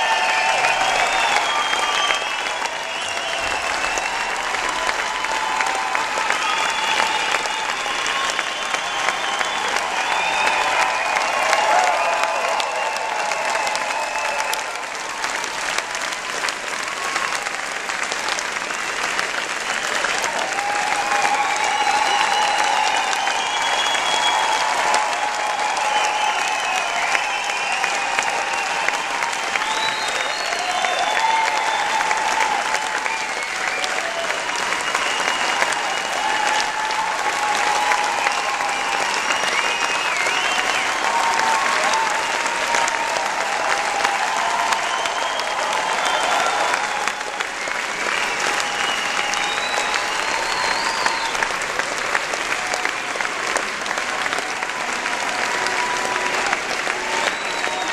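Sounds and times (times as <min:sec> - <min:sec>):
audience clapping: 0:00.0 - 0:57.9.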